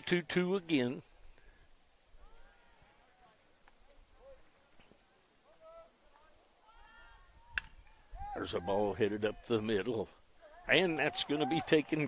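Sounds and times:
faint voices calling out: 0:02.1 - 0:12.0.

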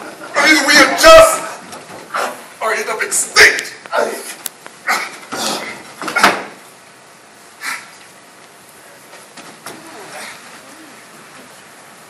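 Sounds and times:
people grunting and breathing: 0:02.0 - 0:02.5, 0:03.9 - 0:06.6, 0:07.5 - 0:08.1, 0:08.8 - 0:11.5.

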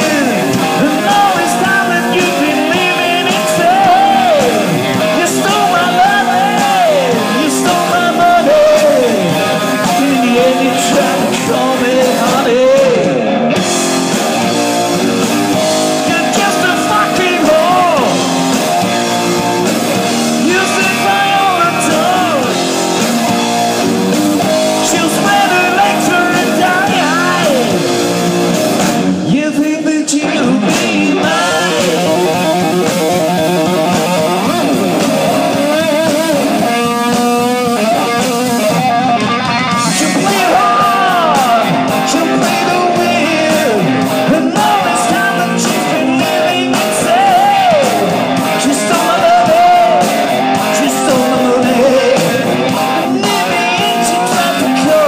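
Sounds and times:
man singing: 0:00.0 - 0:13.6, 0:15.3 - 0:19.0, 0:20.0 - 0:23.7, 0:24.4 - 0:28.2, 0:29.2 - 0:55.0
heavy metal band playing: 0:00.0 - 0:55.0.

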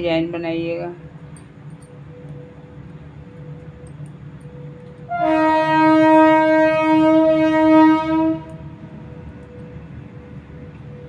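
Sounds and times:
loud horn-like tone: 0:05.0 - 0:09.2.

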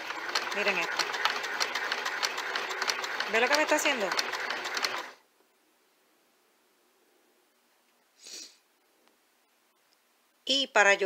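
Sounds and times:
sewing machine stitching: 0:00.0 - 0:05.2.

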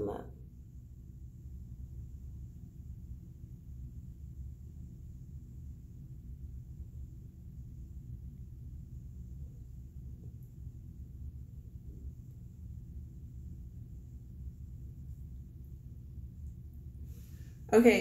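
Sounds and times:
low room tone rumble: 0:00.0 - 0:18.0.

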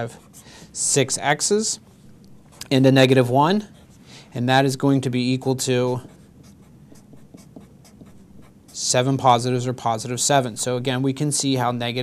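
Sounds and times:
marker strokes on paper: 0:00.0 - 0:01.2, 0:05.9 - 0:09.1.

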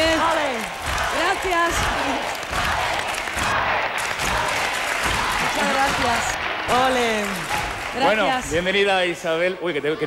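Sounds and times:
audience applauding: 0:00.0 - 0:09.2.

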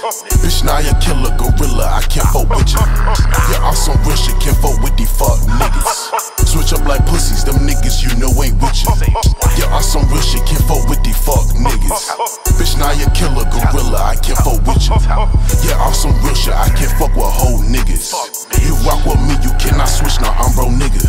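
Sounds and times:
hip hop beat with heavy bass: 0:00.0 - 0:21.0
rapped vocals: 0:00.0 - 0:21.0.

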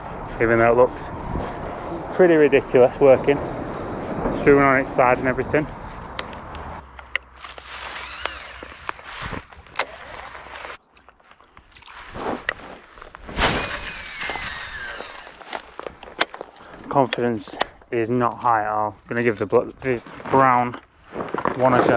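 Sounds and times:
fishing rod and reel rustling: 0:06.0 - 0:13.2, 0:14.0 - 0:16.7.

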